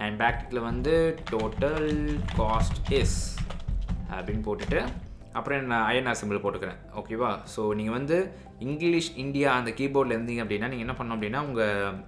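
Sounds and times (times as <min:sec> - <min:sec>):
person speaking: 0:00.0 - 0:12.0
computer keyboard typing: 0:00.3 - 0:05.2.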